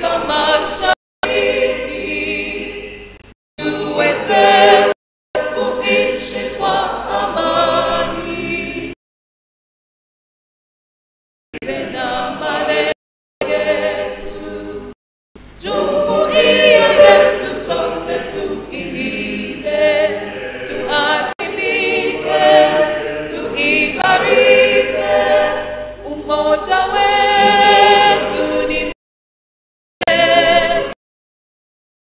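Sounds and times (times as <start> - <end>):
choir singing: 0.0 - 9.0, 11.6 - 14.9, 15.6 - 29.0, 30.0 - 31.0.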